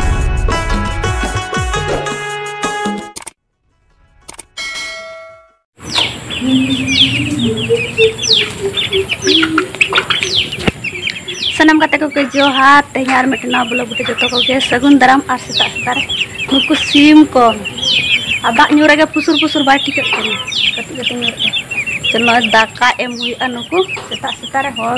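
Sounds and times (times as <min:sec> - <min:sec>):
chicks peeping: 0:05.8 - 0:24.9.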